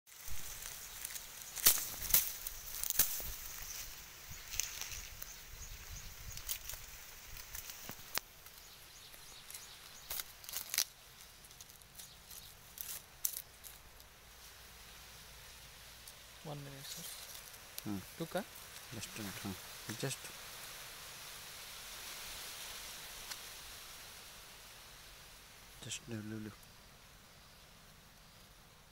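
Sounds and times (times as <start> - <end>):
dry leaves crackling: 0.1 - 27.1
faint outdoor hiss: 0.1 - 28.9.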